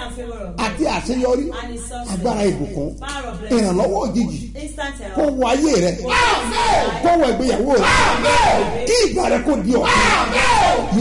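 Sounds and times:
man praying aloud: 0:00.6 - 0:04.5, 0:05.2 - 0:11.0.

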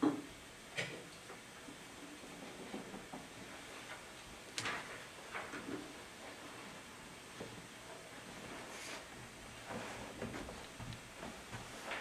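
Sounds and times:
rustling and knocking handling noise: 0:09.6 - 0:12.0.

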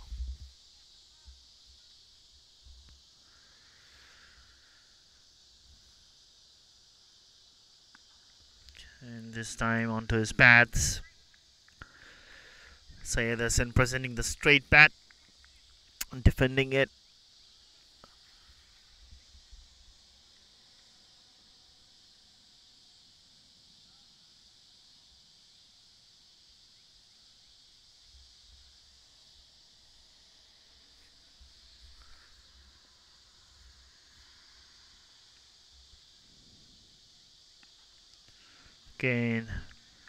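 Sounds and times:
steady high hiss: 0:00.0 - 0:40.0.

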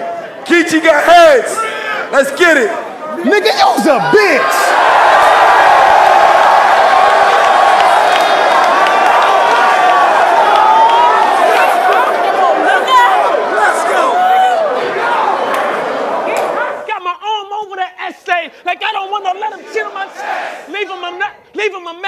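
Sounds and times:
crowd cheering and shouting: 0:00.0 - 0:22.0
man shouting: 0:00.6 - 0:04.8, 0:11.5 - 0:15.2.

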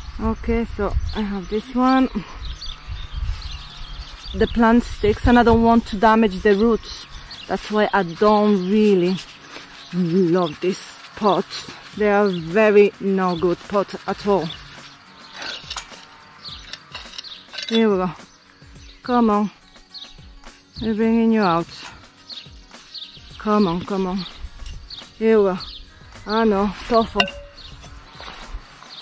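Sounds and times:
soft background music: 0:00.0 - 0:29.0
soil handling: 0:05.2 - 0:18.2, 0:22.8 - 0:29.0
metal trowel scraping in pot: 0:06.4 - 0:18.0, 0:26.8 - 0:28.5
clink of terracotta pot: 0:27.2 - 0:27.6.

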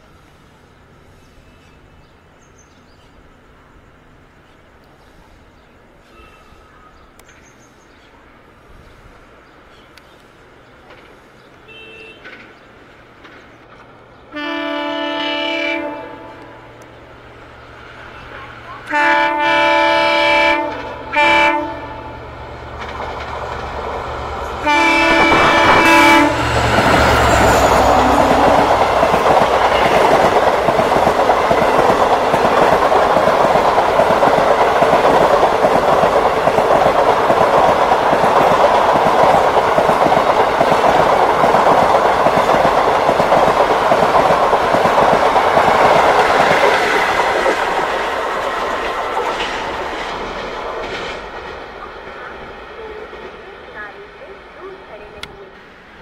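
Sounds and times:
train clickety-clack on rails: 0:06.0 - 0:55.6
locomotive horn blasts: 0:11.6 - 0:12.4, 0:14.3 - 0:16.7, 0:18.8 - 0:22.2, 0:24.6 - 0:29.0.

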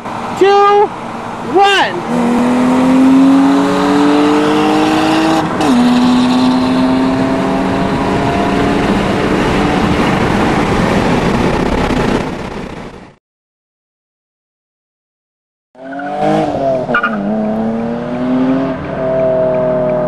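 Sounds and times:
car engine accelerating: 0:00.0 - 0:13.0, 0:15.8 - 0:20.0.

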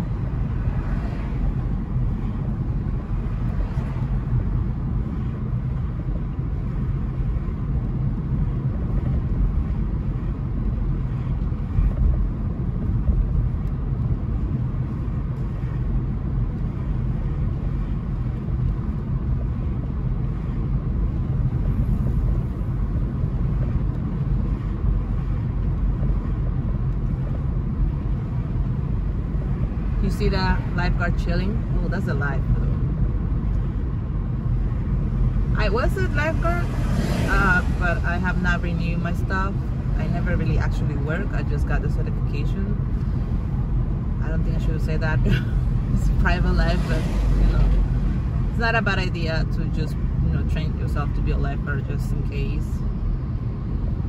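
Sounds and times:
car road and wind rumble: 0:00.0 - 0:54.0.

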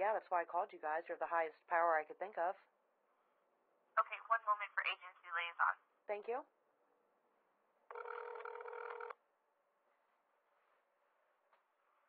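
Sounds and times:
telephone electronic tone: 0:07.9 - 0:09.1.

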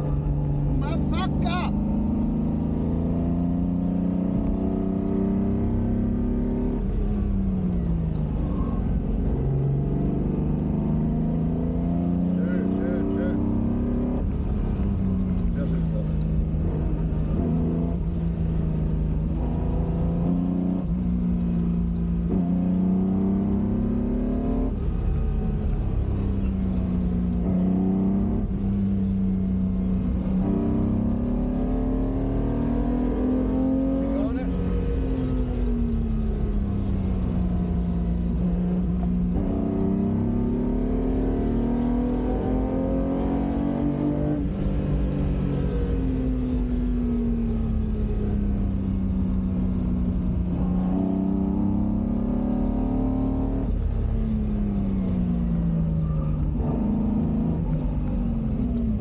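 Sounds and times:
car engine revving: 0:00.0 - 0:59.0.

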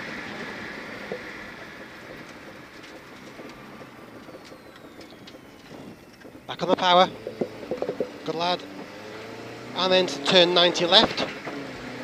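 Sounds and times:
faint whine: 0:00.0 - 0:11.0
car engine and road noise: 0:00.0 - 0:12.0.

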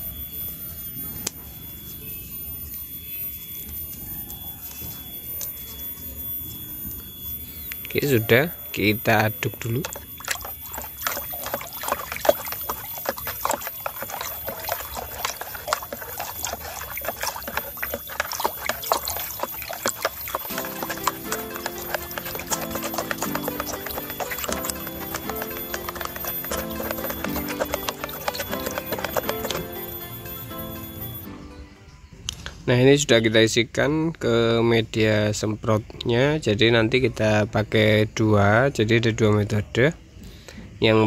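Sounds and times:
water splashing in plastic bucket: 0:07.9 - 0:31.3
background music: 0:20.5 - 0:32.4.

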